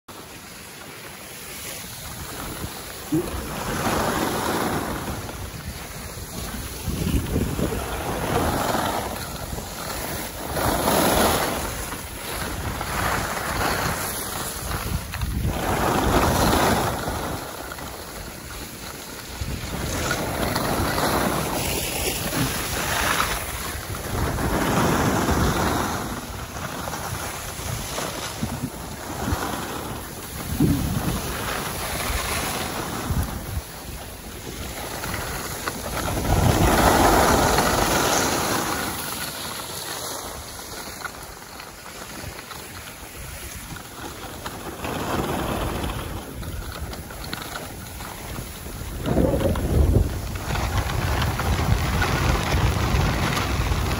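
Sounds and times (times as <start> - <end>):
skis sliding over snow: 0.1 - 53.9
wind buffeting microphone: 1.8 - 53.9.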